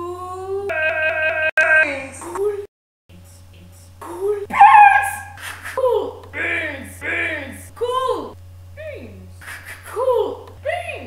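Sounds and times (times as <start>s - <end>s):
woman squealing in a silly voice: 4.5s - 5.4s.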